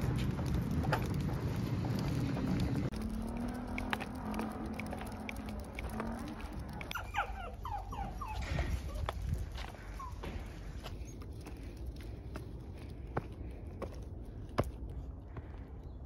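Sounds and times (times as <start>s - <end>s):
small dog whining: 6.8s - 9.3s, 9.9s - 10.3s.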